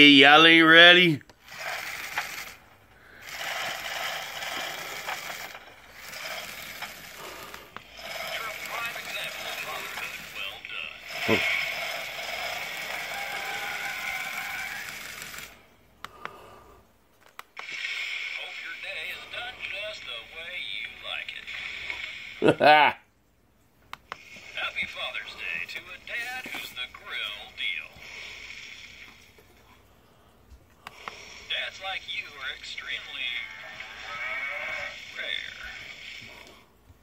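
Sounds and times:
voice from small speaker: 31.6s - 36.1s.

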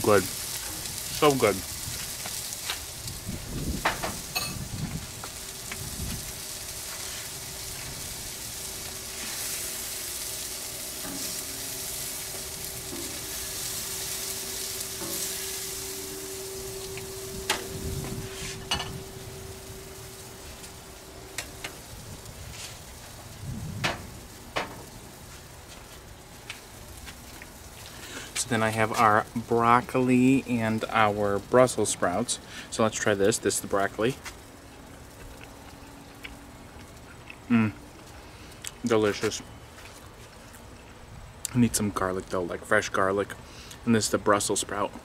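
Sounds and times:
food sizzling on a griddle: 0.0s - 40.2s
faint steady hum: 0.0s - 45.0s.

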